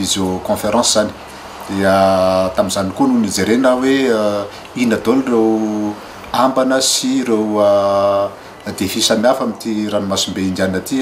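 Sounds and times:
man speaking slowly: 0.0 - 11.0.

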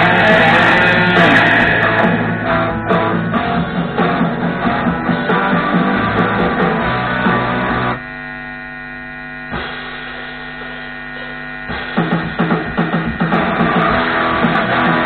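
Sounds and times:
amplifier mains hum: 0.0 - 15.0
electric guitar strumming: 0.0 - 15.0.

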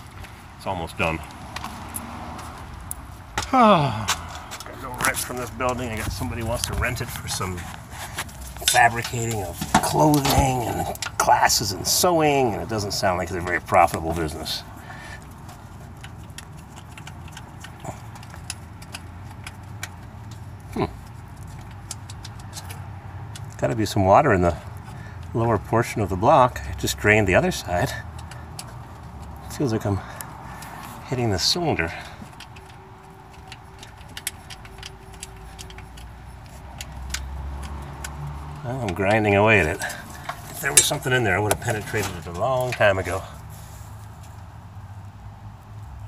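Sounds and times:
screwdriver clicks and scrapes: 32.2 - 38.6.

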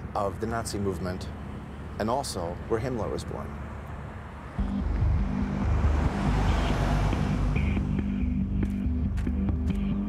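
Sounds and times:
car cabin road noise: 0.0 - 9.9
background music with low bass: 4.6 - 10.0.

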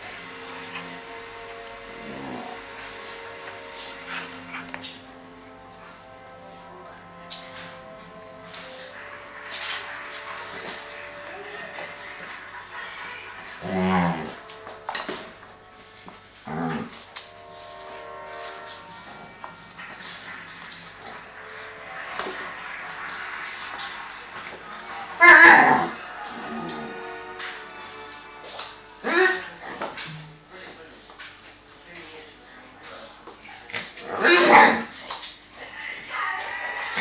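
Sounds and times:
dog growling: 2.0 - 2.7, 13.6 - 14.4, 16.4 - 17.0, 33.8 - 35.0.

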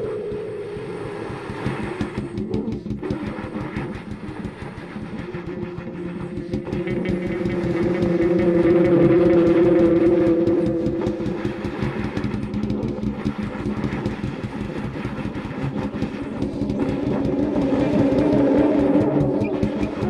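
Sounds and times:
growling low saxophone: 0.0 - 13.9, 16.2 - 20.0.

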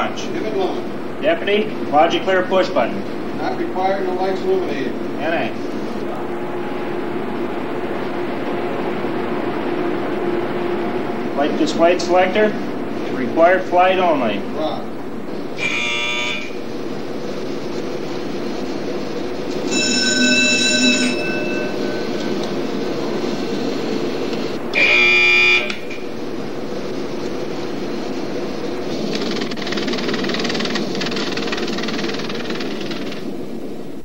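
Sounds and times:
whirring equipment noise: 0.0 - 34.0
electronic alarm buzzes: 15.6 - 16.7, 19.5 - 26.2.

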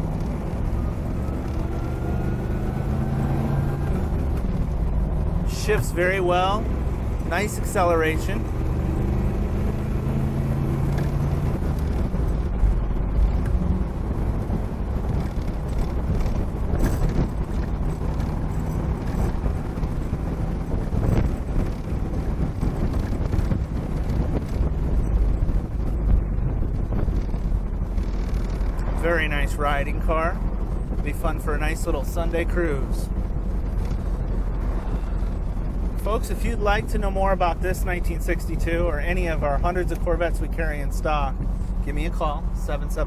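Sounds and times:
wind noise: 0.0 - 42.6
car engine at highway speed: 0.0 - 43.0
road noise: 0.0 - 43.0.

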